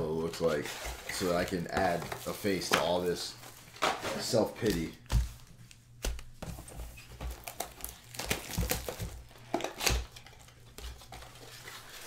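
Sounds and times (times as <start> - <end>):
foil wrapper crinkling and tearing: 7.2 - 12.0.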